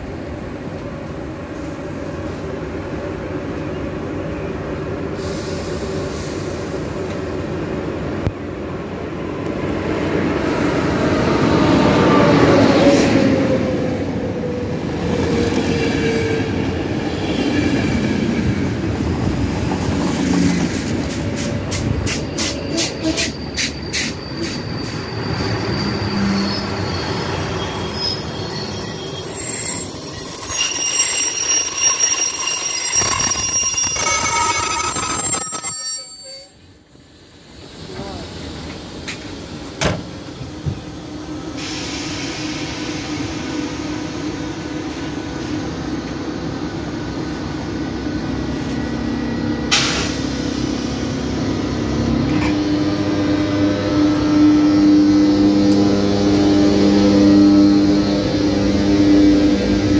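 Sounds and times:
high brake squeal: 22.0 - 36.8
diesel locomotive rumble: 36.7 - 59.9.

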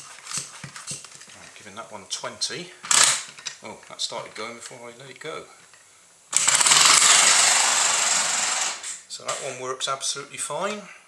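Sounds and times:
toy air motor rattling: 6.4 - 8.9.

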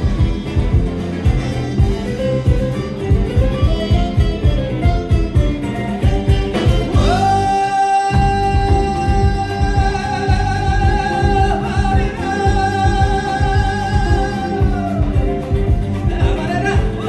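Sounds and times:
steady drum beat: 0.0 - 17.0
person singing a long high note: 7.0 - 15.2.

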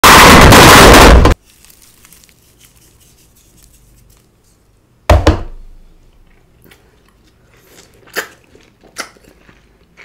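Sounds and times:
orange being bitten and chewed: 6.1 - 10.0.

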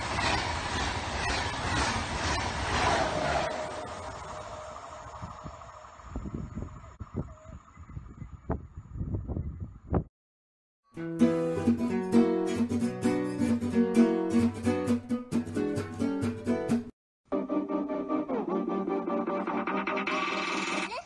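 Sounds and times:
high-speed train passing: 0.0 - 6.2
low wind gusts: 0.0 - 10.1.

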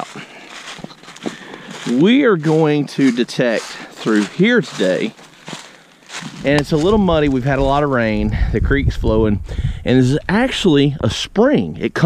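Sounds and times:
footsteps crunching dry leaves: 0.0 - 7.6.

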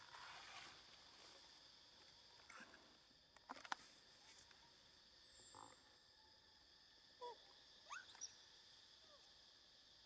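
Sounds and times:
faint insect hum: 0.0 - 10.0
faint chirping animal calls: 7.2 - 8.4.

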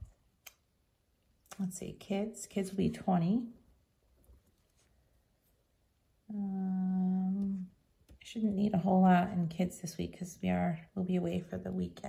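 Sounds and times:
woman humming: 6.3 - 7.7.

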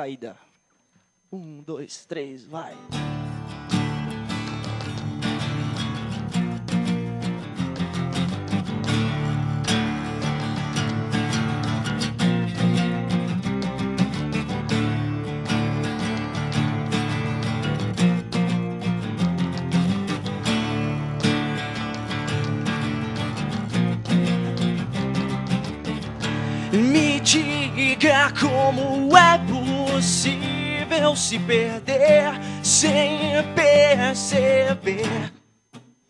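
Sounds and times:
strummed acoustic guitars: 2.6 - 36.0
electric bass guitar: 3.0 - 34.1.

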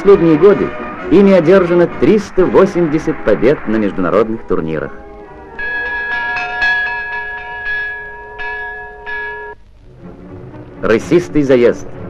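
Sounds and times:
bells ringing: 5.4 - 9.6.

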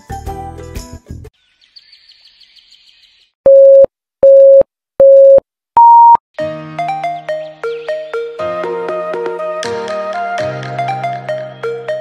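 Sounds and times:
countdown beeps: 3.5 - 6.2
higher beep: 3.5 - 6.2.

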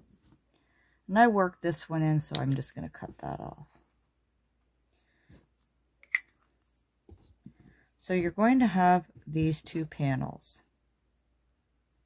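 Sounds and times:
faint handling sounds: 5.1 - 8.4.

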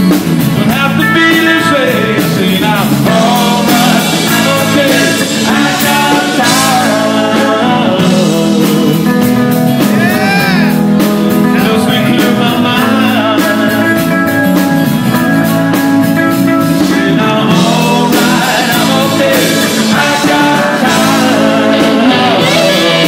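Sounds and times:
drums: 0.0 - 23.0
electric guitar: 0.0 - 23.0
live rock band playing: 0.0 - 23.0
man singing lead: 0.6 - 23.0.

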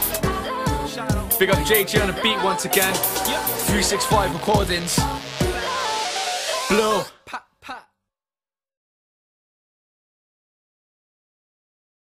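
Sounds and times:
man's short vocal sounds: 6.7 - 8.0.

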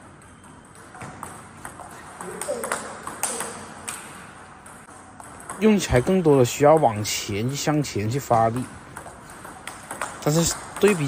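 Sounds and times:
table tennis ball clicks: 0.2 - 6.8, 8.3 - 11.0.

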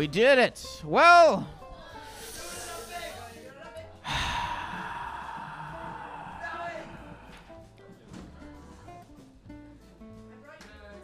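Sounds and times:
man sighing into microphone: 4.0 - 7.6.

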